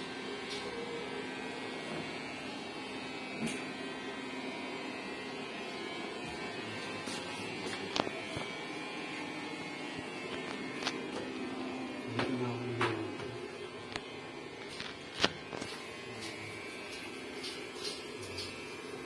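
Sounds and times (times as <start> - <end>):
mechanical hum: 0.0 - 19.0.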